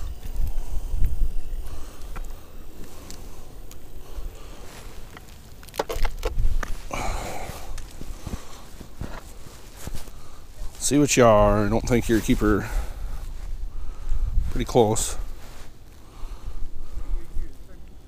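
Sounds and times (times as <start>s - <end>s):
boots walking on ice: 4.6s - 10.3s
sharp ice crunches: 4.8s - 10.2s
short rustle: 6.3s - 16.2s.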